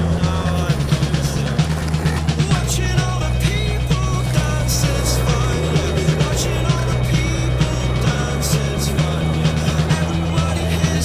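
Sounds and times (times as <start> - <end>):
indie disco music: 0.0 - 11.0.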